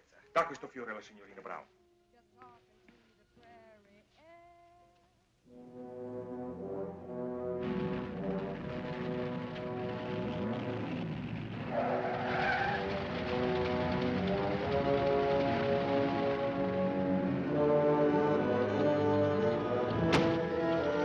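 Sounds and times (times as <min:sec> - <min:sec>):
orchestral music with brass: 0:05.5 - 0:11.1, 0:12.8 - 0:21.0
car driving: 0:07.0 - 0:21.0
tyres squealing: 0:11.6 - 0:21.0.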